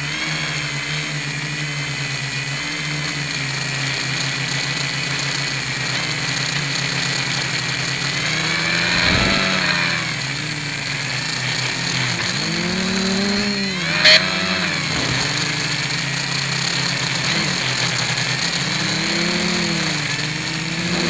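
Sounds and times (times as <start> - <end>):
quadcopter propellers buzzing: 0.0 - 21.0.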